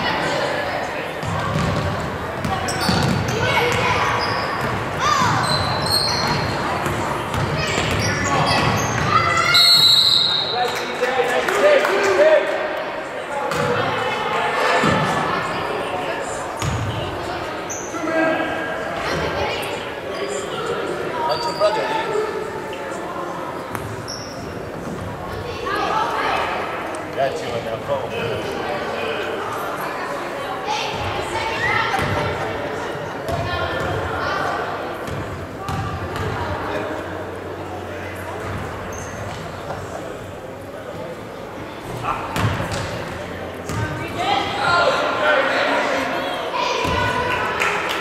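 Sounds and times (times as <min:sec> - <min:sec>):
voices in echoing gym: 0:00.0 - 0:48.0.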